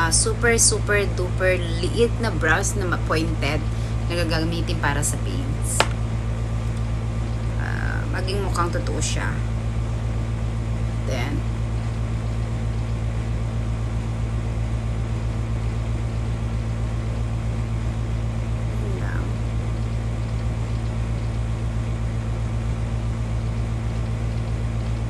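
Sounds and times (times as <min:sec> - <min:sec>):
low room hum: 0:00.0 - 0:25.0.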